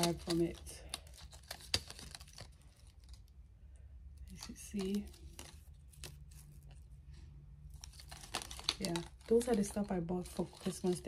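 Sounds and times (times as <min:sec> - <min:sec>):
crinkling and rustling: 0:00.0 - 0:03.4, 0:04.2 - 0:11.0
cardboard tag tearing: 0:07.8 - 0:11.0.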